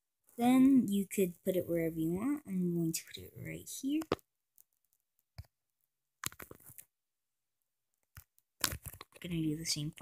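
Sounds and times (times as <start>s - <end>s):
fingers tapping touchscreen: 6.2s - 6.8s.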